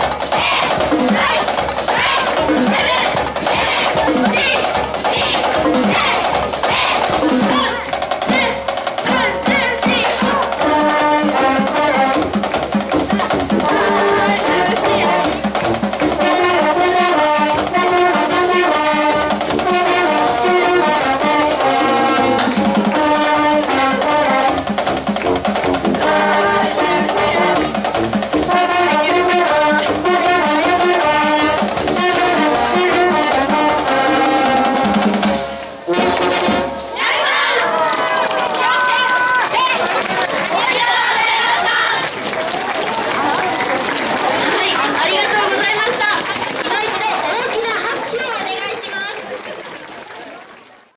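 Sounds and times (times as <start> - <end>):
brass marching band playing: 0.0 - 50.9
players shouting together: 0.3 - 10.7, 36.9 - 42.1.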